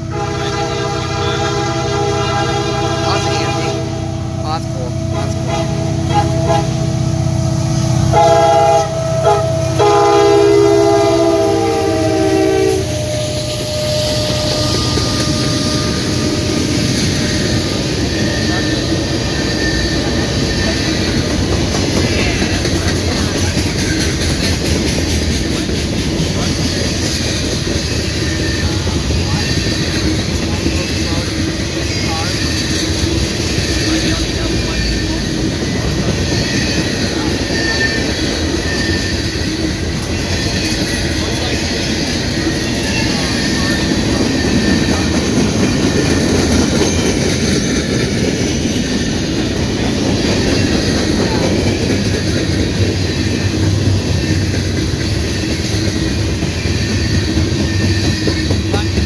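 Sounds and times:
locomotive horn blasts: 0:00.0 - 0:17.0
freight cars rolling on rails: 0:00.0 - 0:59.0
clickety-clack over rail joints: 0:13.5 - 0:59.0.

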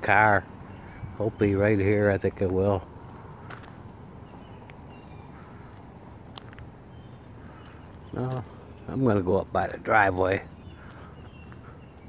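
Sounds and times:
bird chirps: 0:00.2 - 0:02.1, 0:04.2 - 0:12.0.

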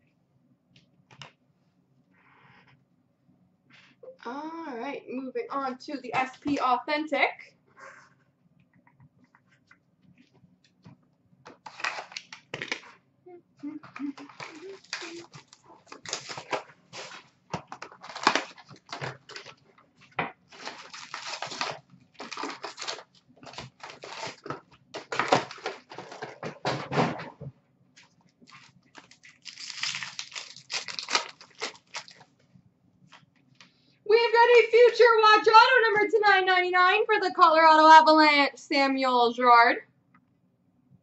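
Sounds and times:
card wrappers crinkling and tearing: 0:11.5 - 0:12.9, 0:14.2 - 0:19.6, 0:20.5 - 0:26.4, 0:28.4 - 0:32.3.

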